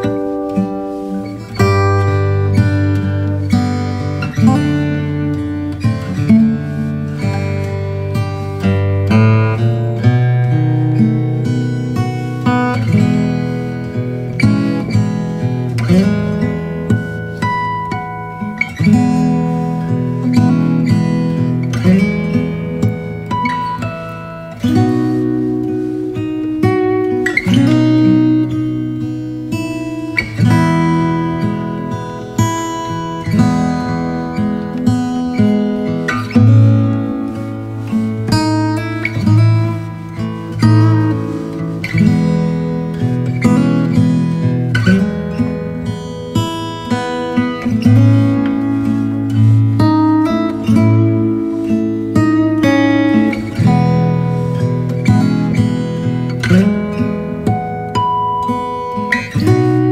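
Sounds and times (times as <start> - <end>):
acoustic guitar plucked and strummed: 0.0 - 59.9.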